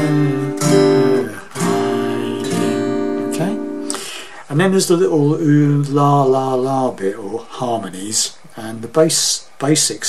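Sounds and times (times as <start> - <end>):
acoustic guitar strumming chords: 0.0 - 5.9.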